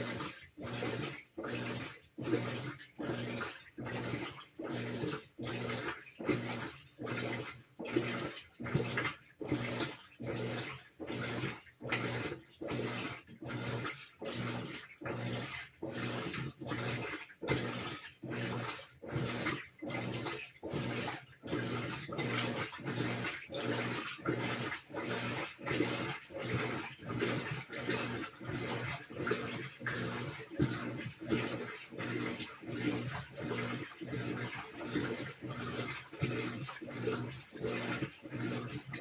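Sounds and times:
washing machine agitating: 0:00.0 - 0:39.0
water swishing: 0:00.0 - 0:39.0.

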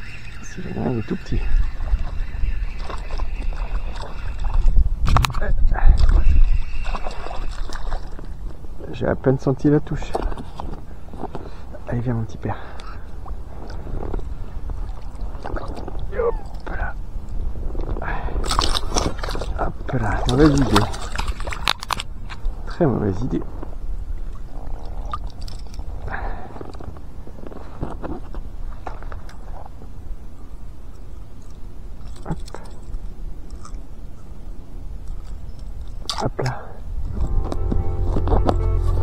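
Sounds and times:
water splashing: 0:00.0 - 0:04.8, 0:06.6 - 0:08.4, 0:18.5 - 0:21.8
loud steady low rumble: 0:37.1 - 0:39.0.

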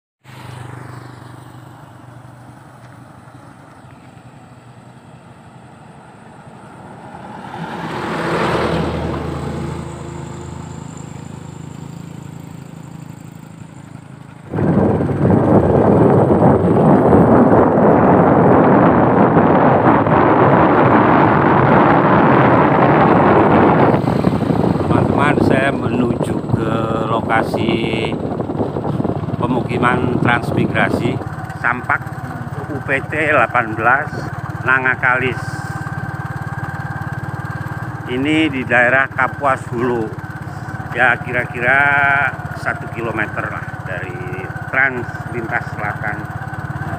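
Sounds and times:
motor vehicle passing: 0:00.2 - 0:46.9
low engine hum: 0:00.3 - 0:46.9
loud steady rushing noise: 0:14.4 - 0:46.9.

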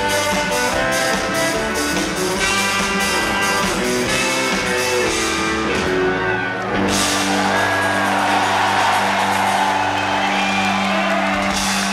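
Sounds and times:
rock band holding a chord: 0:00.0 - 0:11.9
audience cheering and whooping: 0:06.2 - 0:11.9.

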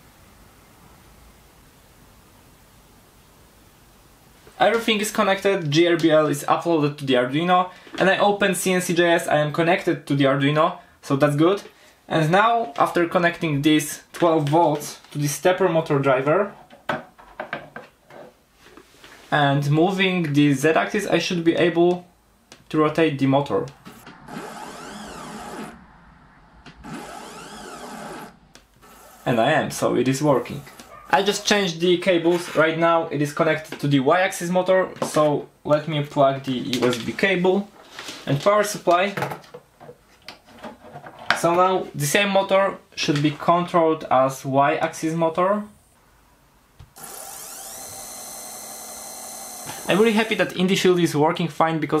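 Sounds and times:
stepper motor whine: 0:23.8 - 0:29.7, 0:47.0 - 0:50.5.

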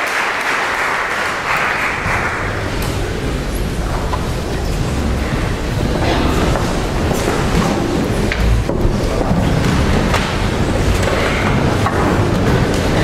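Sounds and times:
audience clapping: 0:00.0 - 0:03.2
low rumble of people standing: 0:00.1 - 0:13.0.

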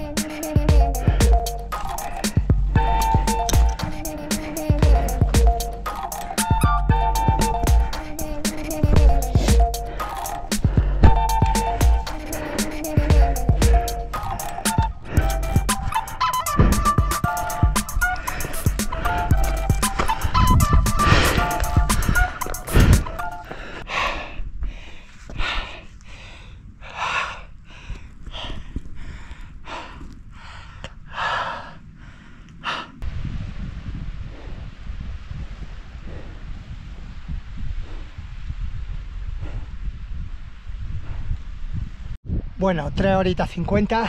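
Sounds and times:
background music: 0:00.0 - 0:23.5
heavy rapid breathing: 0:00.0 - 0:33.0
low wind rumble on microphone: 0:00.8 - 0:10.0, 0:10.6 - 0:12.3, 0:13.0 - 0:44.0.

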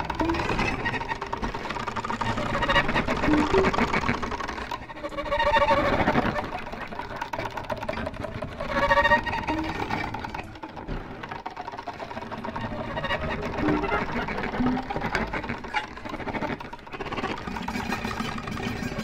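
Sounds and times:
violin through electronic effects: 0:00.0 - 0:19.0.

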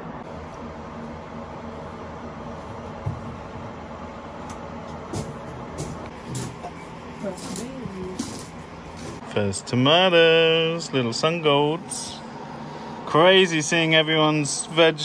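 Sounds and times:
fan humming: 0:00.0 - 0:15.0.

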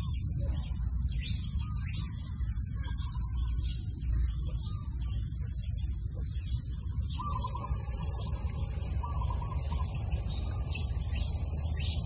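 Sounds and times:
constant high drone: 0:00.0 - 0:12.0
low rumble: 0:00.0 - 0:12.0
short pitched calls: 0:07.0 - 0:12.0.

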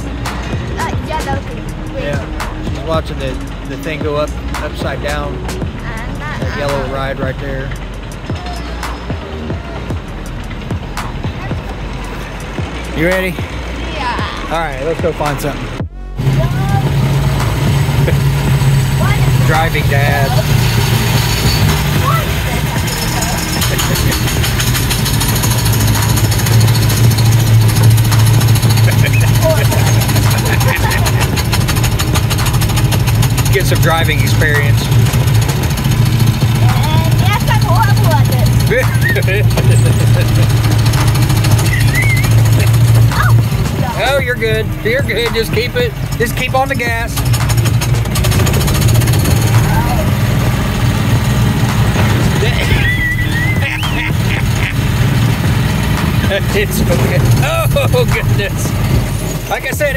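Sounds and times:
small engine chugging: 0:16.3 - 0:59.9.

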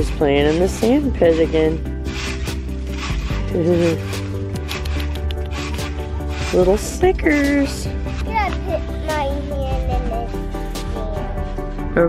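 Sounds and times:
cat scratching in sand: 0:00.0 - 0:11.6.

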